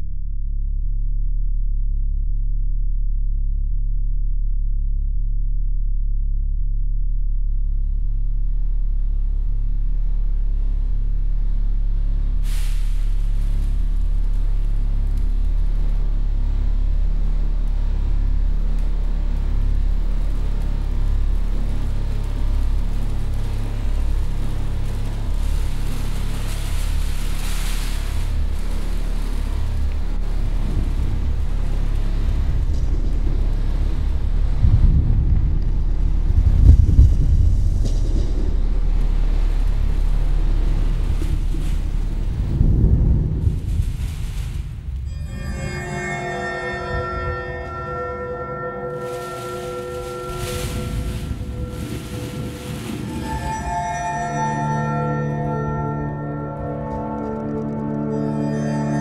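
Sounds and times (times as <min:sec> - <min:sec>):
deep rumbling drone: 0:00.0 - 0:59.0
hissing noise: 0:48.0 - 0:55.6
burst of noise: 0:48.9 - 0:54.4.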